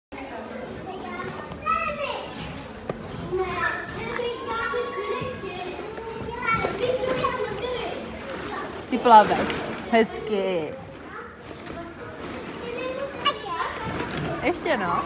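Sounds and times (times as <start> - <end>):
children playing and squealing: 0.8 - 8.8, 11.0 - 15.0.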